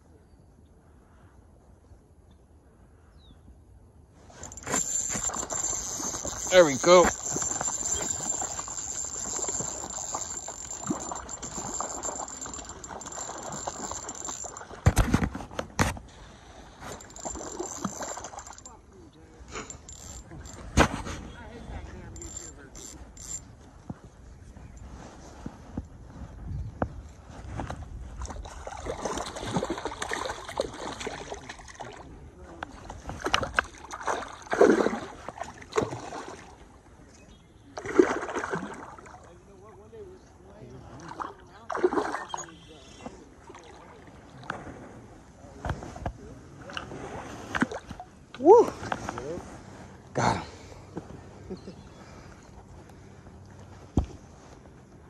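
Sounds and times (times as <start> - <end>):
fishing reel cranking: 4.4 - 14.8, 16.9 - 18.7, 19.6 - 20.7, 22.2 - 23.4
fish splashing in water: 41.1 - 42.7.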